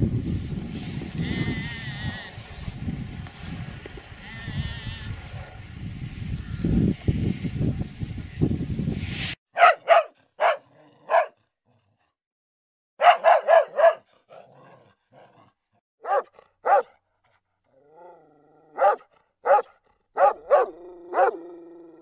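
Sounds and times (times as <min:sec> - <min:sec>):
puppy yapping: 0:16.0 - 0:16.9.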